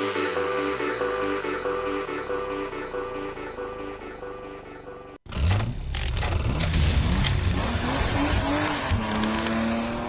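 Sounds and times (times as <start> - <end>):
racing car engines revving: 5.5 - 10.0.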